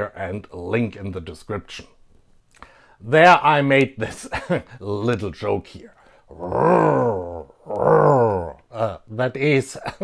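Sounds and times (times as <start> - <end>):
man imitating engine revving: 6.3 - 8.6.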